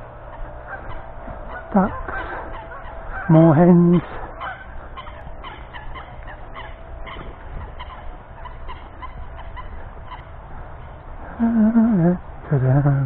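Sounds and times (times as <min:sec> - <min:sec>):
geese calling: 0:00.0 - 0:13.0.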